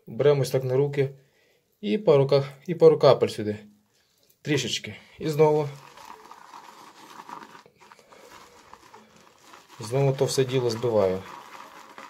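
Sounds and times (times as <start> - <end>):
shaving brush swishing in bowl: 5.2 - 12.0.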